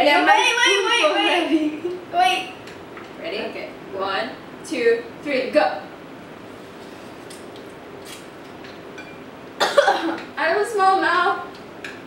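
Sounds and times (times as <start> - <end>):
woman speaking: 0.0 - 2.6, 3.2 - 5.9, 10.4 - 11.5
woman coughing: 9.6 - 10.3.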